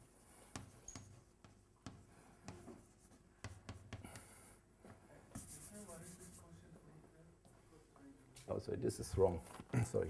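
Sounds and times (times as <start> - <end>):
chalk scratching on blackboard: 0.5 - 4.0, 5.3 - 6.6
chalk tapping on blackboard: 0.5 - 4.3, 5.3 - 6.5.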